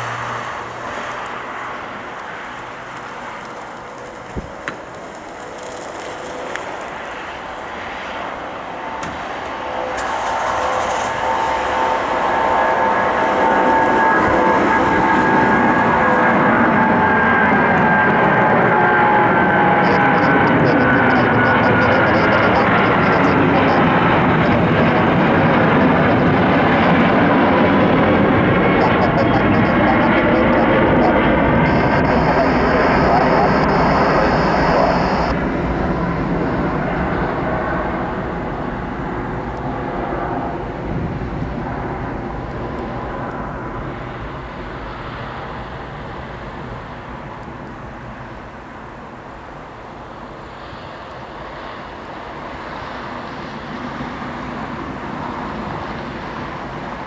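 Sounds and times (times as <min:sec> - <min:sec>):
jet engines with whining fan: 0:00.0 - 0:57.0.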